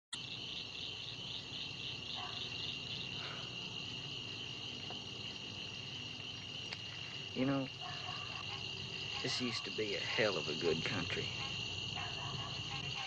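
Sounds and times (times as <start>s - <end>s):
crickets chirping: 0.1s - 13.0s.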